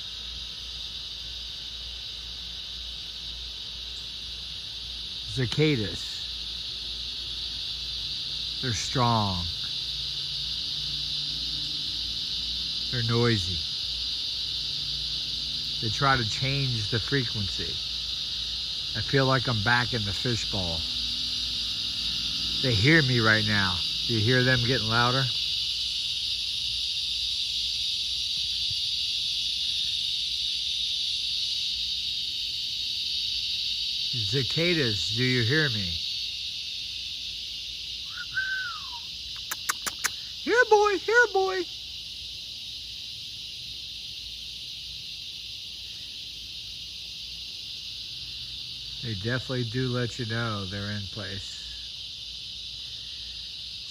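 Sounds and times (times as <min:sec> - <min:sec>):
cicadas droning: 0:00.0 - 0:53.9.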